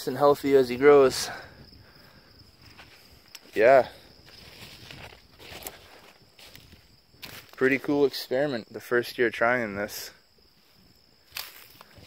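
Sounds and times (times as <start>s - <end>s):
footstep rustling in vegetation: 2.0s - 8.2s, 10.5s - 12.0s.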